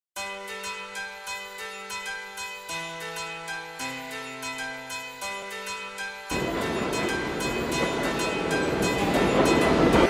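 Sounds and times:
background music: 0:00.2 - 0:10.0
subway train rumbling past: 0:06.3 - 0:10.0.

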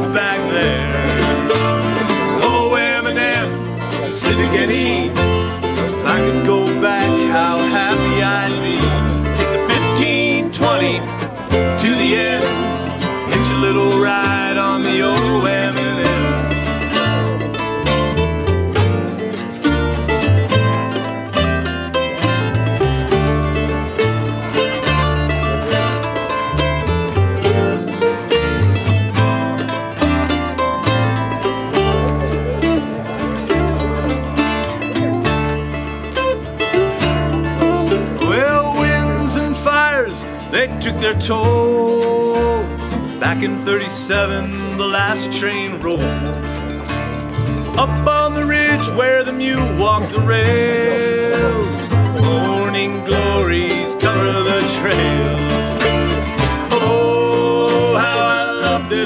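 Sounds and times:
acoustic guitar picking: 0:00.0 - 0:59.0
mandolin picking: 0:00.0 - 0:59.0
upright bass: 0:00.0 - 0:59.0.

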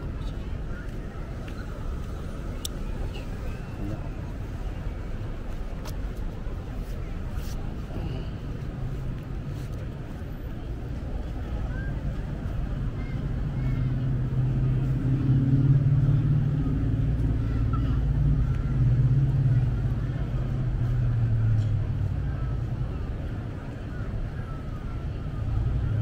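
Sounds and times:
vehicle engine humming: 0:00.0 - 0:26.0.

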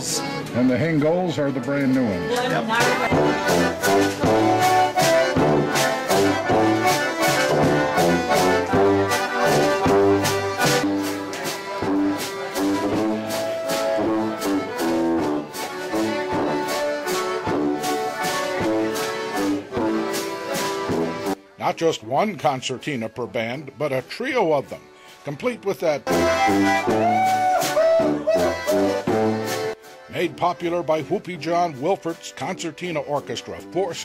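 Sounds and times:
concertinas playing melody: 0:00.0 - 0:34.0
drum kit with cymbals: 0:02.7 - 0:21.4
tuba oom-pah bass: 0:02.7 - 0:24.8, 0:25.4 - 0:34.0.

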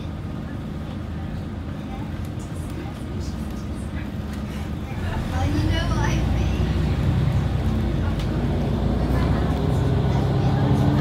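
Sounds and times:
bus diesel engine: 0:00.0 - 0:11.0.

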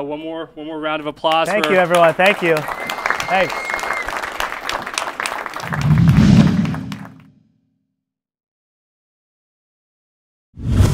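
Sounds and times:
audience applauding: 0:01.3 - 0:07.3.

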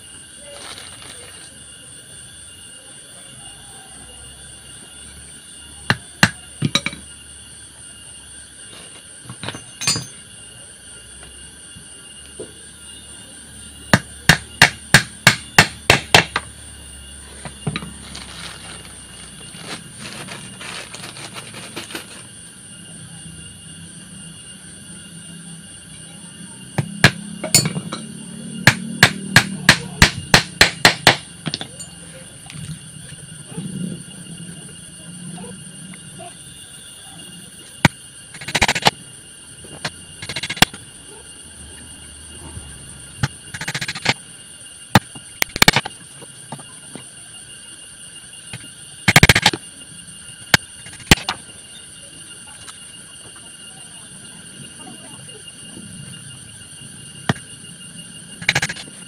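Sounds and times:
hammer striking nails into wood: 0:14.3 - 0:16.4, 0:28.7 - 0:31.2.

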